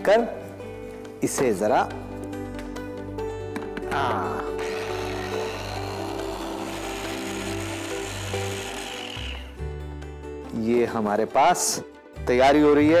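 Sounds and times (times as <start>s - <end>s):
electric food chopper grinding: 4.6s - 9.7s.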